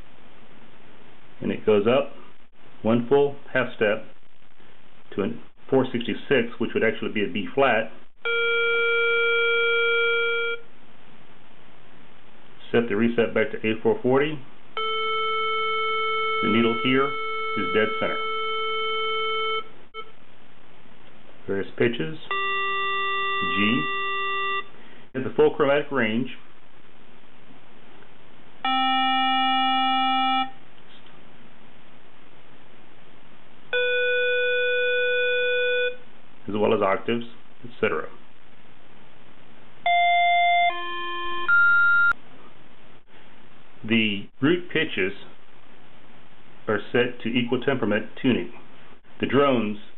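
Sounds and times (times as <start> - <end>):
steady reference pitch tone: 14.8 - 20.2, 22.3 - 24.7.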